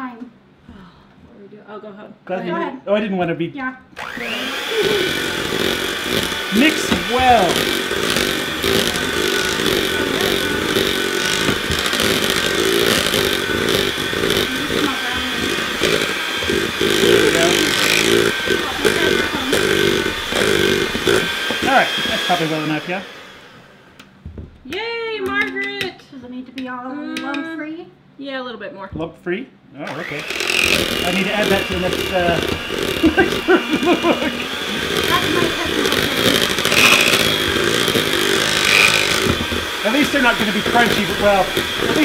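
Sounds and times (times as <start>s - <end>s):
electric hand mixer running: 4.0s - 24.2s, 29.9s - 42.0s
person drawn-out vocal sound: 4.6s - 5.8s.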